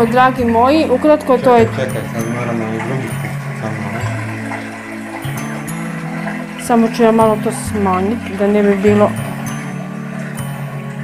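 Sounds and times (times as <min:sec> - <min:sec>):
running water: 0:00.0 - 0:11.0
soft sustained musical notes: 0:00.0 - 0:11.0.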